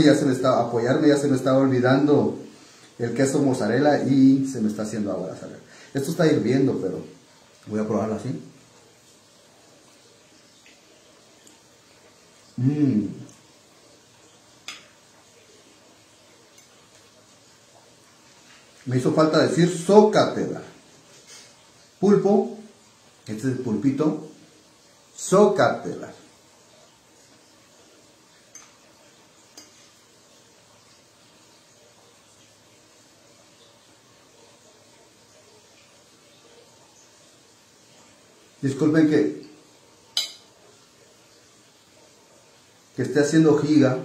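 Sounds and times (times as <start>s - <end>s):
fork clinking on plate: 40.1s - 40.5s.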